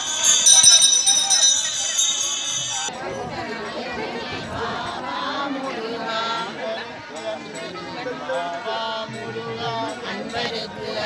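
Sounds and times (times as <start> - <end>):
crowd talking and calling: 0.0 - 11.0
people singing: 0.0 - 11.0.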